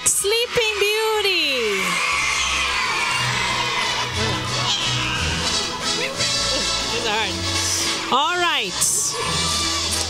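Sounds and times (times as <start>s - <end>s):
children audience noise: 0.0s - 6.0s.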